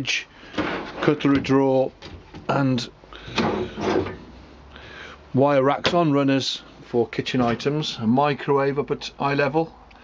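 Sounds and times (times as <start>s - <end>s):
rattling scrapes: 3.3s - 4.3s.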